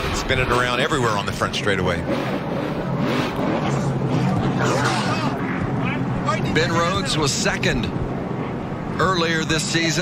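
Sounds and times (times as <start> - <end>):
engine revving: 0.0 - 6.0.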